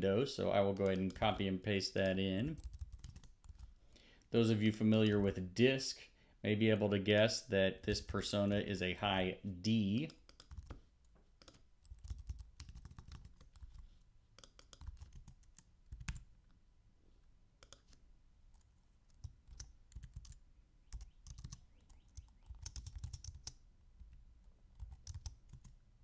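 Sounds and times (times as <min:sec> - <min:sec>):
computer keyboard typing: 0:00.7 - 0:01.4, 0:02.5 - 0:03.7, 0:10.0 - 0:10.8, 0:11.4 - 0:13.8, 0:14.4 - 0:16.3, 0:17.6 - 0:25.8.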